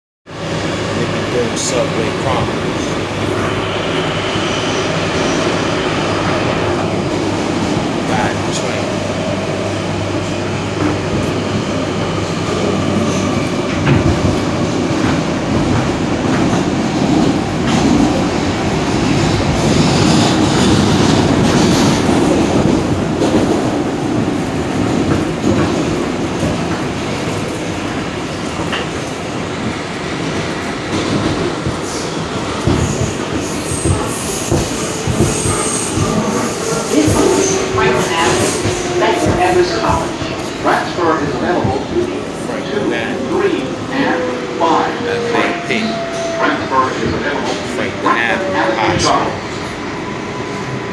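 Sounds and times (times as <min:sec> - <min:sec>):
subway train wheels rumbling: 0:00.3 - 0:50.9.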